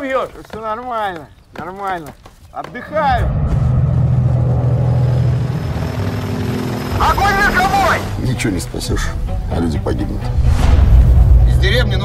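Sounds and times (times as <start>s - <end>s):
helicopter engine and rotor drone: 4.8s - 8.2s.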